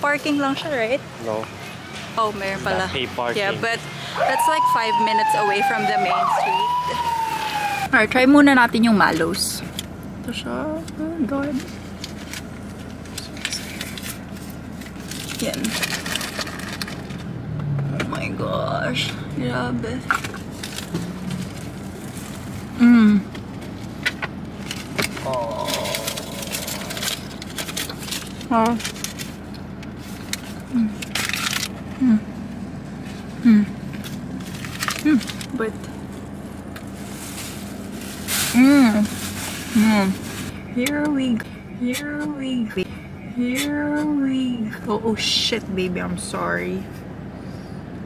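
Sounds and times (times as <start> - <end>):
rustling: 20.1 - 22.8, 23.4 - 40.6.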